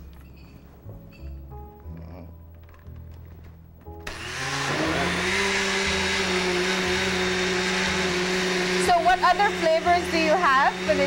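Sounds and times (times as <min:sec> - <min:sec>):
blender motor running: 0:04.0 - 0:11.0.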